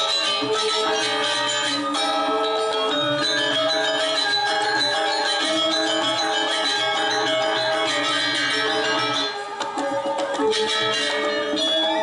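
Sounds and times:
gamelan playing: 0.0s - 12.0s.

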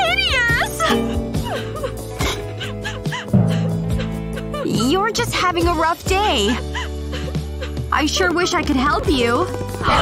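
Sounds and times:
woman sobbing and wailing: 0.0s - 8.7s
light background music: 0.0s - 10.0s.

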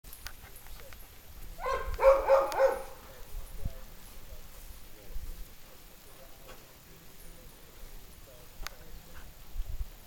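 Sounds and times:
dog yelping high-pitched: 1.6s - 3.0s.

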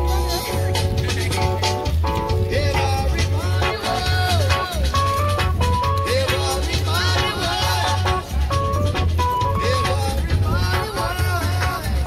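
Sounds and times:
heavy bass line: 0.0s - 12.0s
reggae band playing: 0.0s - 12.0s.

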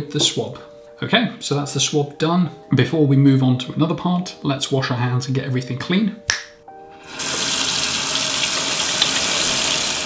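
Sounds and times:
tap water running into sink: 7.1s - 10.0s.

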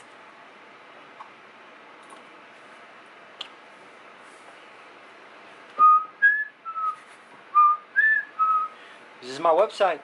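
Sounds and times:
person whistling a tune: 5.8s - 7.0s, 7.6s - 8.8s.

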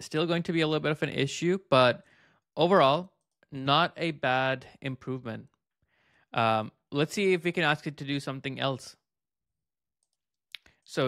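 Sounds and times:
man speaking: 0.0s - 2.0s, 2.6s - 5.5s, 6.4s - 9.0s.

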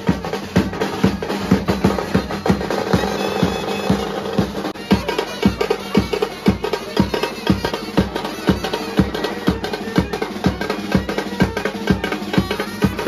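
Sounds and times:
bass drums beating: 0.0s - 13.0s
snare drum rolls: 0.0s - 13.0s.

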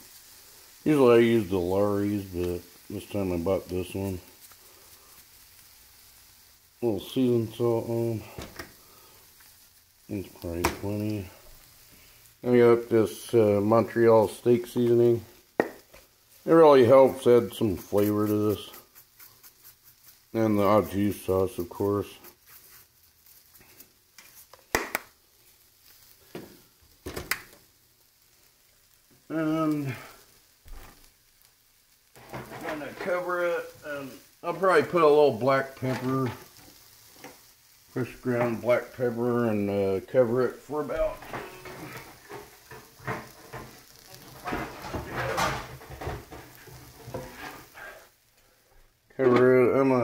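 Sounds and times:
food sizzling in oil: 0.0s - 50.0s.

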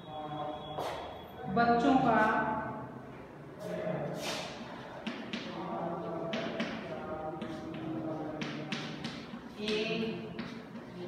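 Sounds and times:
chalk tapping and scraping on board: 4.2s - 11.0s.

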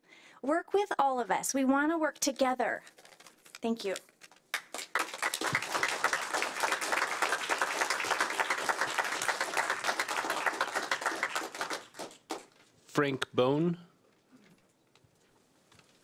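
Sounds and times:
audience applauding: 4.5s - 12.5s.

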